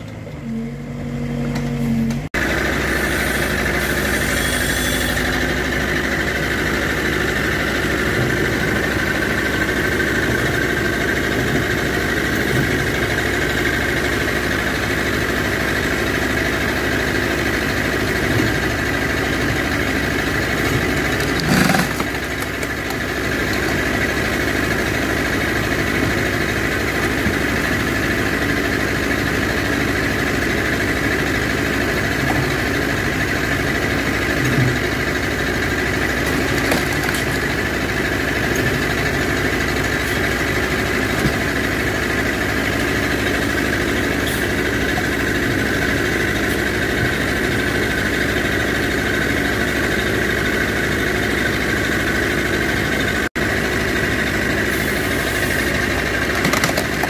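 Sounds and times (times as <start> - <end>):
tractor diesel engine running: 0.0 - 57.0.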